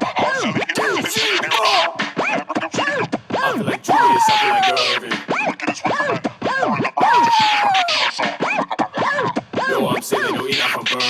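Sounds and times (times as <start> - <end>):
hip-hop track: 0.0 - 11.0
turntable scratching: 0.0 - 11.0.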